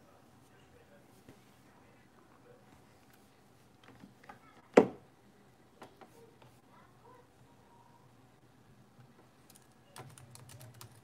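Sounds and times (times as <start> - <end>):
keyboard typing clicks: 9.4 - 11.0.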